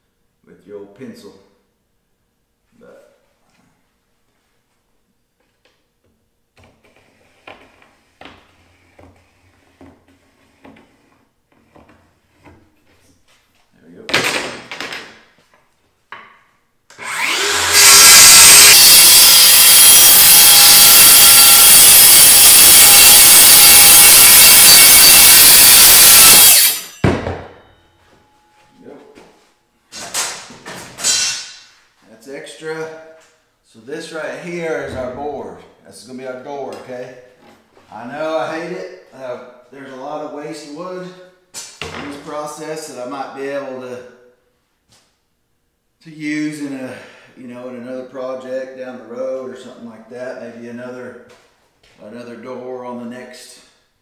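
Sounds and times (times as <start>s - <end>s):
circular saw cutting plywood: 16.9s - 27.0s.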